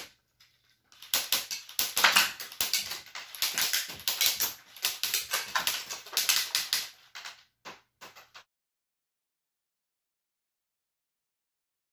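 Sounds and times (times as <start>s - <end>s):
plastic bricks clattering over: 0.9s - 7.4s
toy gun firing plastic clicks: 1.0s - 6.9s.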